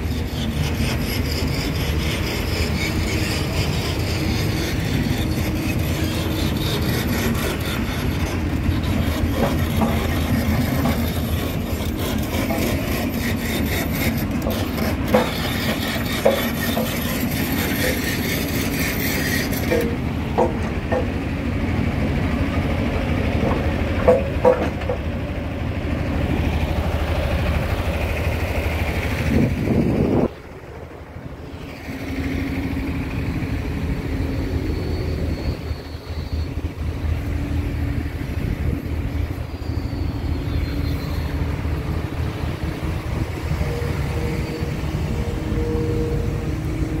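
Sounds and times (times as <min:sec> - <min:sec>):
excavator diesel engine running: 0:00.0 - 0:47.0.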